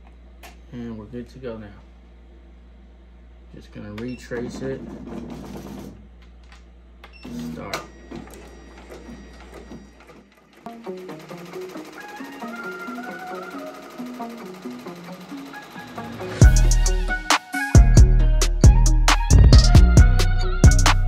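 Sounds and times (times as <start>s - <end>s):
embroidery machine humming: 10.7s - 17.3s
background music with stepping melody: 10.7s - 21.0s.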